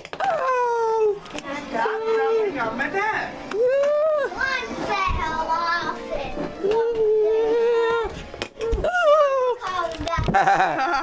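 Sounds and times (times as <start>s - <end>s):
child's wavering wordless cries: 6.6s - 9.9s.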